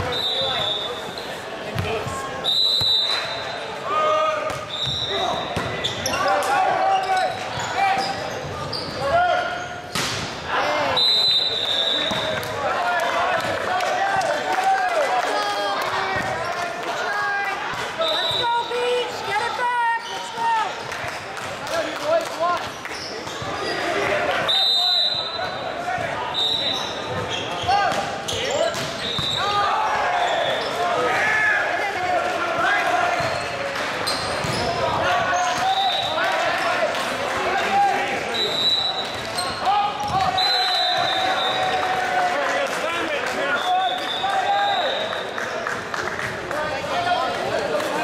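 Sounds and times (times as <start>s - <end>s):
voices in a gymnasium: 0.0s - 48.0s.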